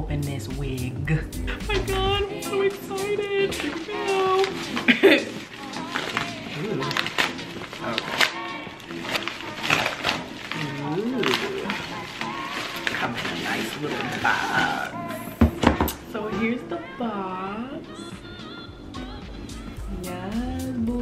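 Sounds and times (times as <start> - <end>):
background music: 0.0 - 21.0
paper mailer crinkling and tearing: 1.7 - 15.1.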